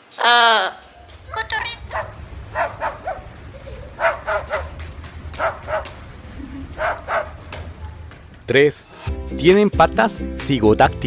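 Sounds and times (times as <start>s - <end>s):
cockatoo mimicking dog barks: 0.2s - 6.0s.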